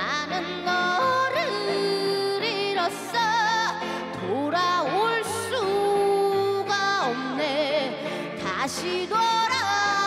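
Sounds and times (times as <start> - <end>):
keyboard accompaniment: 0.0 - 10.0
woman singing: 0.0 - 10.0.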